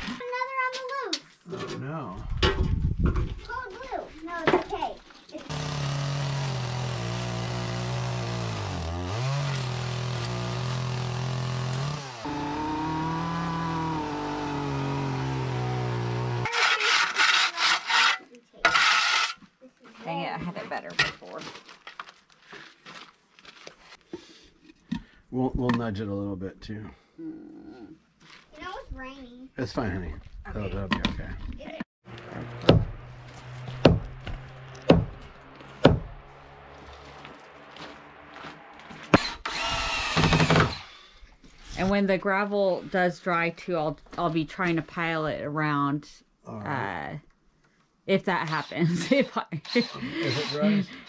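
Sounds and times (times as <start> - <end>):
chainsaw engine revving: 5.5 - 17.0, 32.1 - 38.5, 39.2 - 41.0, 48.5 - 51.0
chainsaw cutting log: 5.5 - 19.4, 32.1 - 36.9, 38.3 - 41.1, 48.4 - 50.8
knocks and handling sounds: 16.6 - 25.9.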